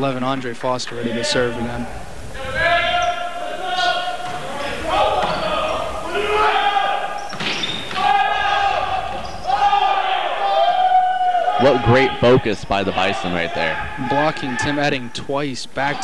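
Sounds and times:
players calling: 0:00.0 - 0:16.0
shoe squeaks on gym floor: 0:07.2 - 0:08.0.

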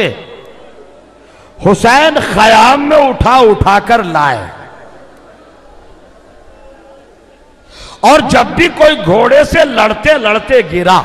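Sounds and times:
man taking sharp breath: 0:01.2 - 0:01.6, 0:07.6 - 0:08.0
man speaking: 0:01.6 - 0:04.6, 0:08.0 - 0:11.0.

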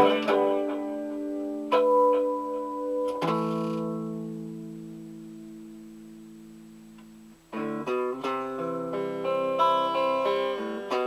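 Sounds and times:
electric guitar notes: 0:00.0 - 0:11.0.

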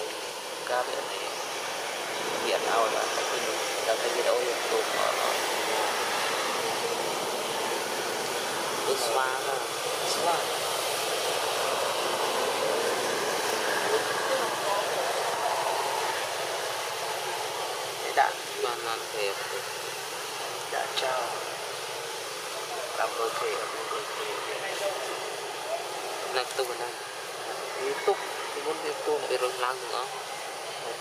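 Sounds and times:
distant people talking: 0:00.0 - 0:31.0.

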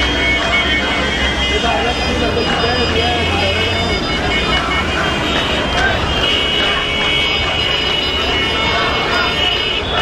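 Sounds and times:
many people's voices: 0:00.0 - 0:10.0
road traffic: 0:00.0 - 0:10.0.

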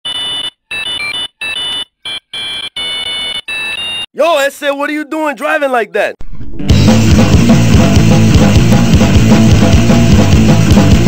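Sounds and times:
high electronic beeping: 0:00.1 - 0:04.1.

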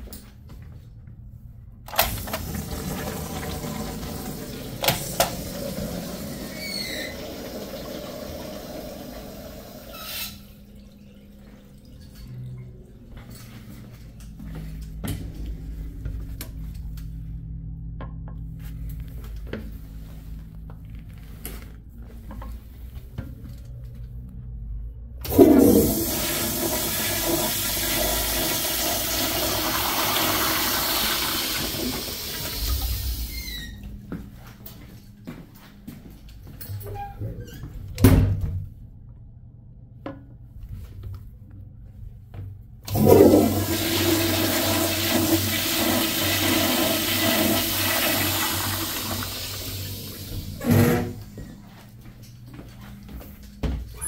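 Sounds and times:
toilet flushing: 0:01.9 - 0:14.5, 0:25.2 - 0:33.8, 0:42.9 - 0:51.4.

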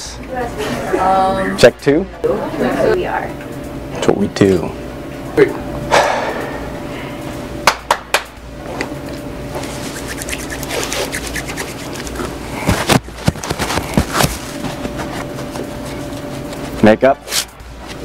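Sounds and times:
steady electrical hum: 0:00.0 - 0:18.0.

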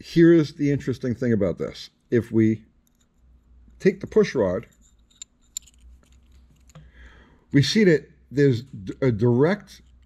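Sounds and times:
light metal clicks: 0:04.6 - 0:07.0.

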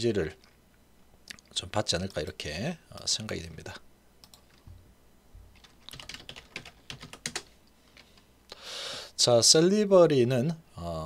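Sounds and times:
computer keyboard typing: 0:04.2 - 0:04.7, 0:05.5 - 0:08.2.

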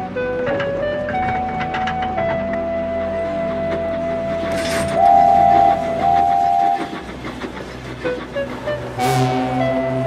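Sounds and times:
steam locomotive whistle blasts: 0:02.6 - 0:07.0, 0:09.0 - 0:10.0.

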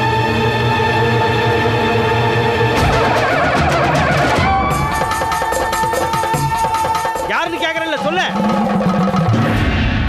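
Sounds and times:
orchestral background music: 0:00.0 - 0:08.3.

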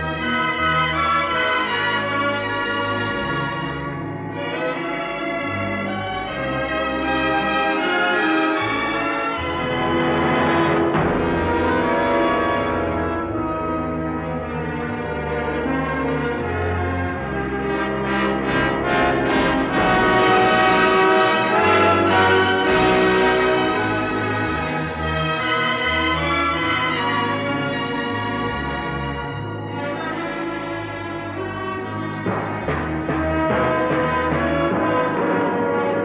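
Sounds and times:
orchestral brass music: 0:00.0 - 0:36.0.

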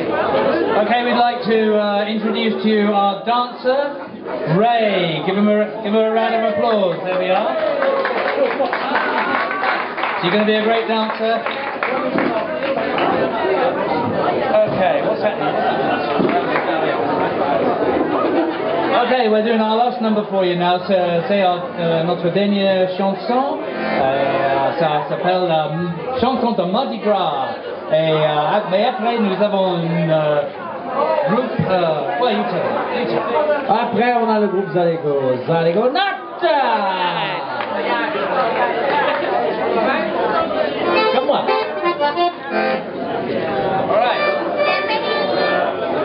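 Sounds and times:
crowd chatter: 0:00.0 - 0:46.0
murmur of overlapping voices: 0:00.0 - 0:46.0.

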